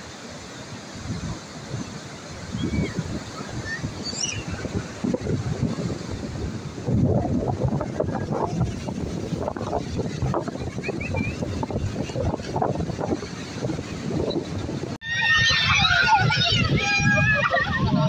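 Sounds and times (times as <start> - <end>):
surf breaking on beach: 0.0 - 18.0
wind buffeting microphone: 0.0 - 18.0.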